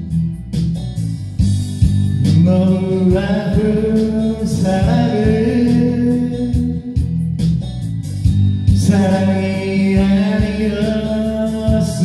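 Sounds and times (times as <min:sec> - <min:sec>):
karaoke backing track: 0:00.0 - 0:12.0
man singing ballad into microphone: 0:02.2 - 0:07.2, 0:08.7 - 0:12.0.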